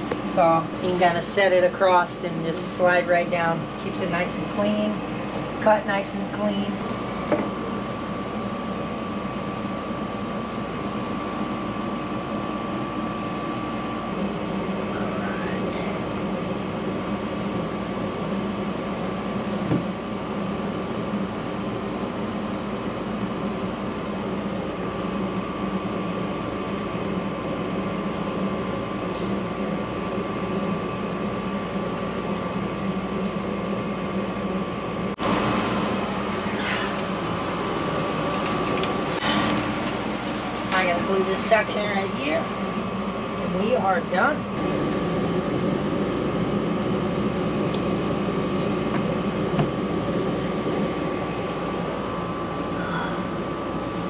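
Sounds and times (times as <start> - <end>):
steady machine hum: 0.0 - 54.0.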